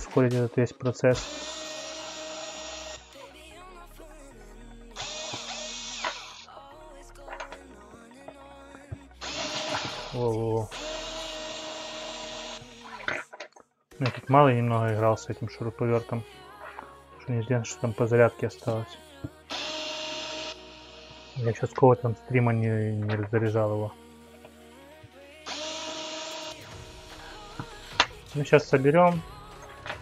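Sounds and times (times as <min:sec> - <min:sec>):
electric screwdriver whining: 0:01.2 - 0:03.3, 0:05.0 - 0:06.5, 0:08.8 - 0:14.2, 0:19.5 - 0:21.8, 0:25.4 - 0:28.4.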